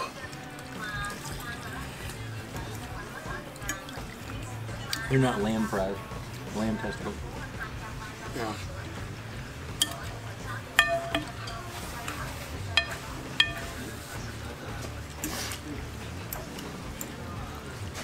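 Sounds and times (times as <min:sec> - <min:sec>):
utensils clinking glass bowls: 0:09.7 - 0:14.3.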